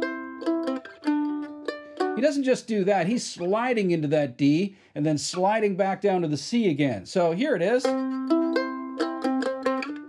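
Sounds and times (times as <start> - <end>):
mandolin strummed and picked: 0.0 - 4.0, 7.5 - 10.0.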